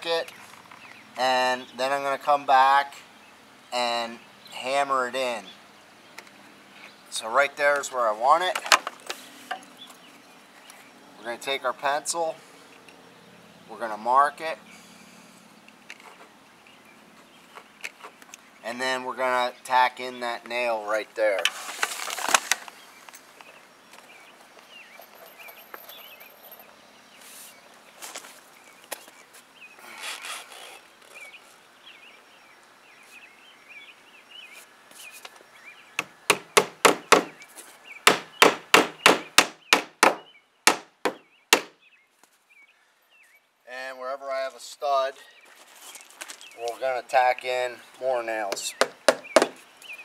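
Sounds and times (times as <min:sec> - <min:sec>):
hammer blows on nails: 0:36.0 - 0:37.4, 0:38.0 - 0:41.8, 0:48.5 - 0:49.6
faint handling sounds: 0:45.4 - 0:46.8.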